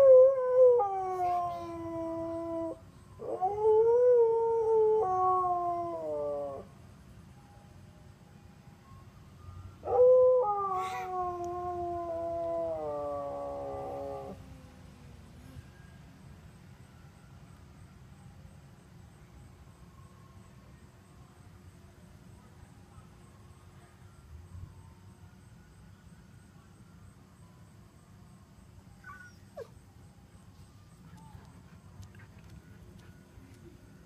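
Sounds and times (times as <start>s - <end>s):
dog whining: 29.0s - 29.7s.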